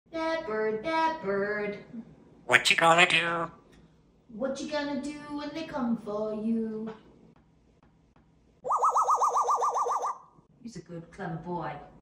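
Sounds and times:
parrot mimicking a siren: 0:02.5 - 0:03.5, 0:08.6 - 0:10.2.

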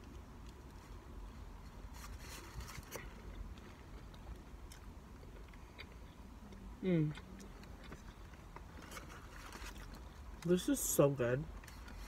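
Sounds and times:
chewing food: 0:00.0 - 0:10.6.

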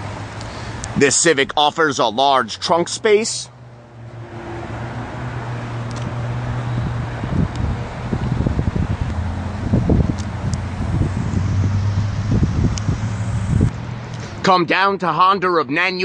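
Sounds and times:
wind buffeting microphone: 0:06.0 - 0:13.7.

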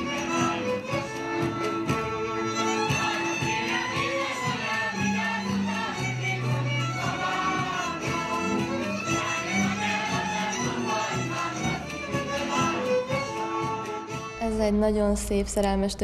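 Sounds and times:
folk music on bowed strings: 0:00.0 - 0:14.9.

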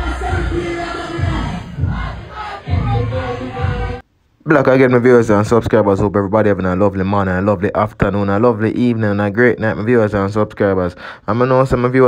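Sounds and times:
crowd yelling and cheering: 0:00.0 - 0:04.0
dancehall music with heavy bass: 0:00.0 - 0:04.0.

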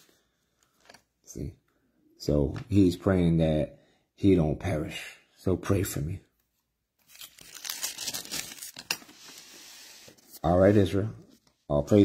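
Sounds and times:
thin pages rustling: 0:00.0 - 0:01.1, 0:07.0 - 0:11.7.

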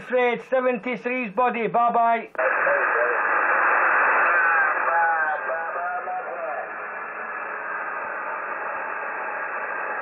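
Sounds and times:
radio receiver hiss: 0:02.3 - 0:10.0
distant voice on radio: 0:02.4 - 0:06.9.

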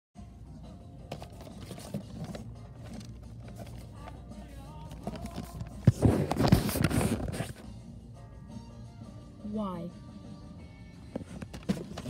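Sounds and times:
soft store background music: 0:00.2 - 0:12.0
cardboard box rustling and scraping: 0:01.1 - 0:04.2, 0:04.8 - 0:07.6, 0:11.2 - 0:12.0.

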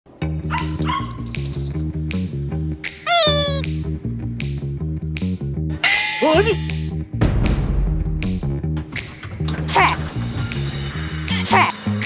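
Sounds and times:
music with plucked bass line: 0:00.2 - 0:05.8, 0:06.5 - 0:12.0
small dog whining: 0:03.1 - 0:03.6.

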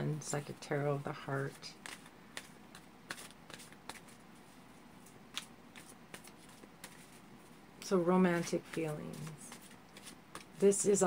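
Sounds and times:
cards being shuffled: 0:01.4 - 0:10.8.

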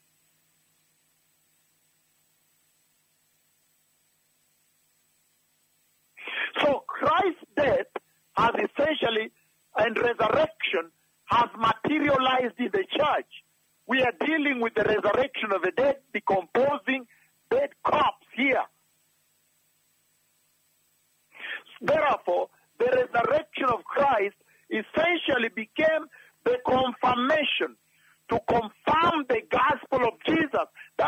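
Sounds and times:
short breathy noise: 0:06.2 - 0:06.6, 0:21.3 - 0:21.8
person speaking: 0:06.2 - 0:18.7, 0:21.4 - 0:31.0.

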